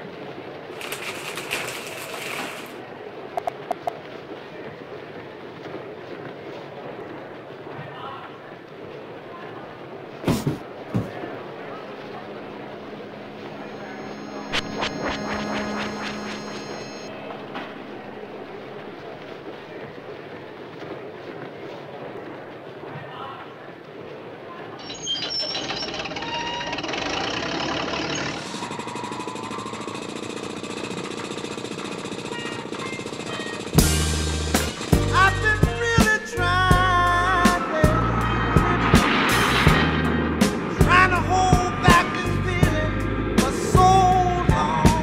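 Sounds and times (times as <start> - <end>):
steady hum: 10.7 - 20.1
electronic tones: 12.4 - 19.2.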